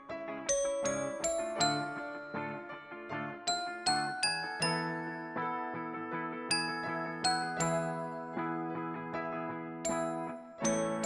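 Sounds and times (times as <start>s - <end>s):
bell-like struck notes music: 0.5s - 2.5s, 3.5s - 5.3s.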